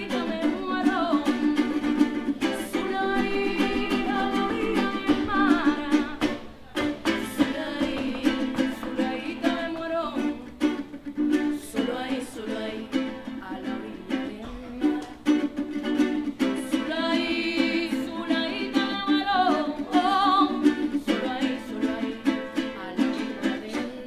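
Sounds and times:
strummed guitar: 0.0s - 24.0s
women singing: 0.0s - 24.0s.

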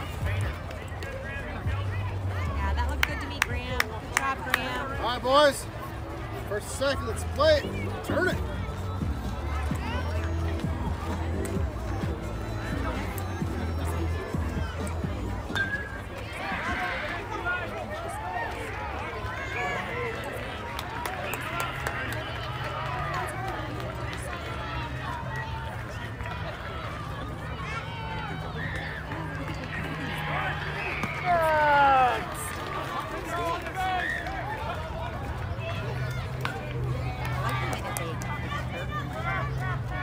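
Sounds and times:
voices calling out: 0.0s - 40.0s.

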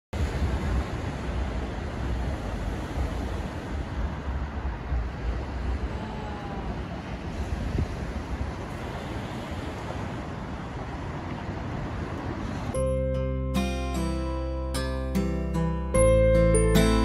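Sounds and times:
wind buffeting the microphone: 0.2s - 12.8s
surf breaking on a beach: 0.2s - 13.0s.

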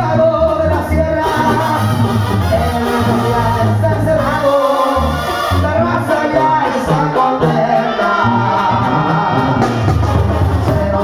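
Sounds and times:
live latin band music: 0.0s - 11.0s
male singers singing together: 0.0s - 11.0s.

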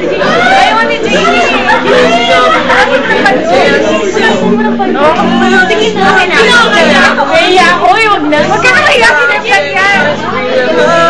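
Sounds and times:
acoustic guitar strumming: 0.0s - 11.0s
voices chattering and calling out: 0.0s - 11.0s.

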